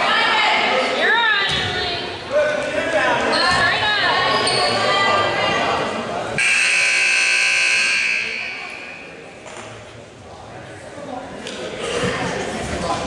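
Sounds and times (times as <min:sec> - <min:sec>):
scoreboard horn buzz: 0:06.4 - 0:09.1.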